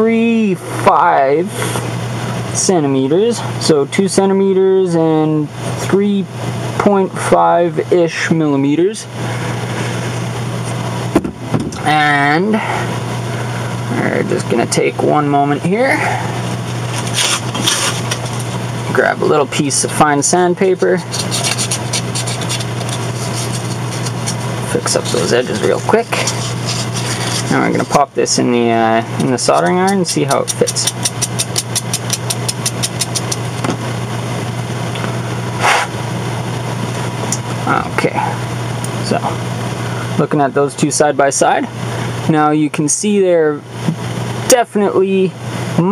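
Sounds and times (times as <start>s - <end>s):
steady low hum: 0.0s - 45.9s
rustling scrapes: 16.7s - 18.6s, 21.0s - 28.1s
sandpaper rubbing metal: 16.9s - 18.4s, 21.0s - 28.1s, 29.3s - 33.4s.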